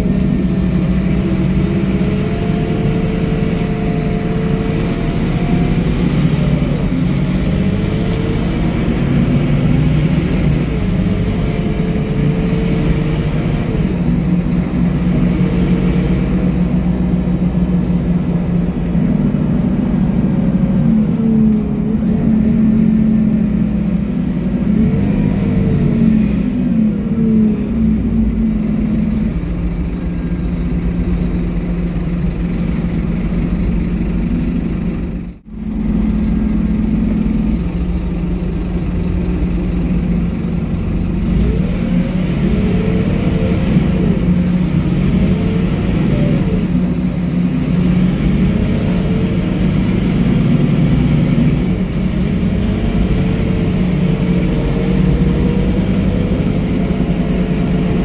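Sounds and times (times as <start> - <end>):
bus diesel engine running: 0.0 - 58.0.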